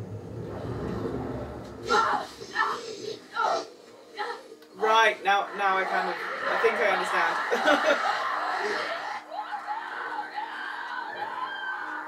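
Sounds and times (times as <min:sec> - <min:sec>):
steady low hum: 0:00.0 - 0:04.9
television drama music: 0:00.0 - 0:12.0
wavering voice-like sounds: 0:01.6 - 0:09.5
crowd yelling: 0:05.2 - 0:12.0.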